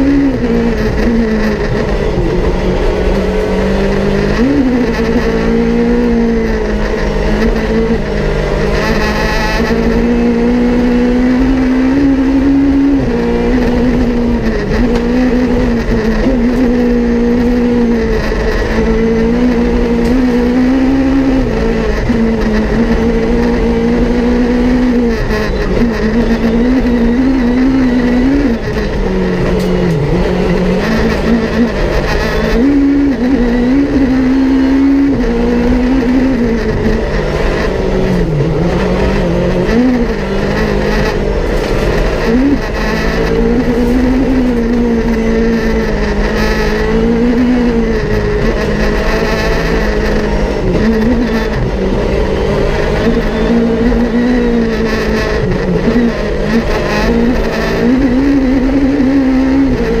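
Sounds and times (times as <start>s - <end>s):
car engine revving through gears: 0.0s - 60.0s.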